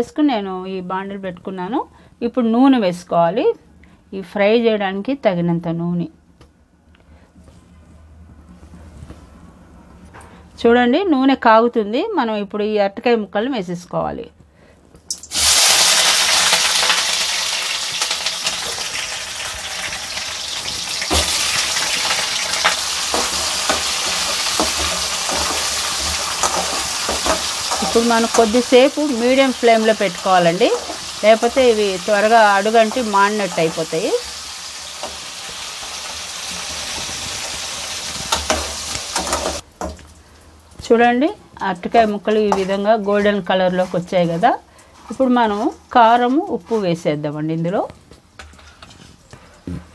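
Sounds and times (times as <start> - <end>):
woman speaking: 0.0 - 3.6, 4.2 - 6.2, 10.6 - 14.4, 27.8 - 34.3, 40.8 - 47.9
slices frying in hot oil: 15.1 - 46.5.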